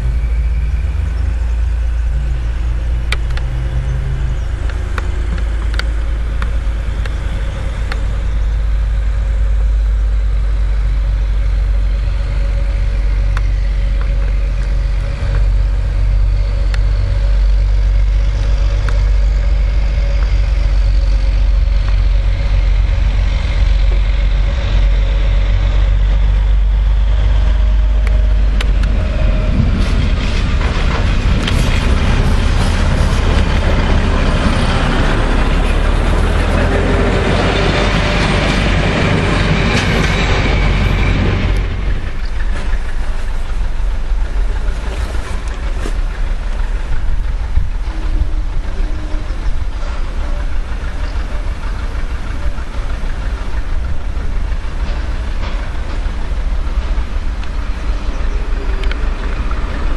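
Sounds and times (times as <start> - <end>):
diesel railcar engine drone: 0.0 - 59.9
thin steady whine: 0.0 - 59.9.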